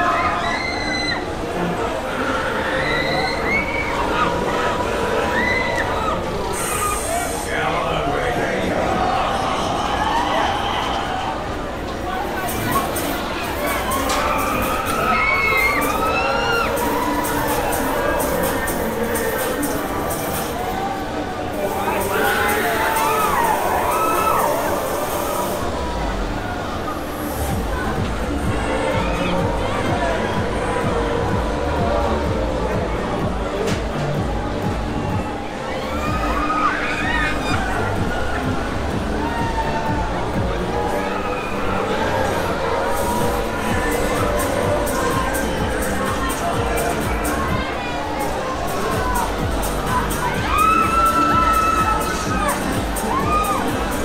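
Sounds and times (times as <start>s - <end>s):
fairground ride rumbling: 0.0s - 54.0s
riders screaming: 2.1s - 7.5s, 12.5s - 19.7s, 21.9s - 25.6s, 49.9s - 54.0s
loud music with steady beat: 12.6s - 20.6s, 27.5s - 35.3s, 42.9s - 47.8s, 48.6s - 54.0s.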